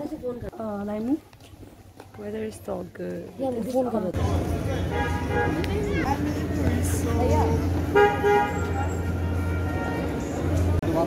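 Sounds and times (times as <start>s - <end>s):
crowd chatter: 2.1s - 11.0s
vehicle horn toot: 4.8s - 5.6s, 7.9s - 10.3s.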